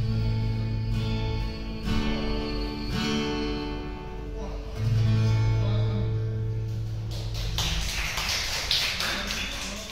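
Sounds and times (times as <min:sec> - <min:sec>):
acoustic guitar chord: 0:00.0 - 0:07.1
audience clapping: 0:06.7 - 0:09.9.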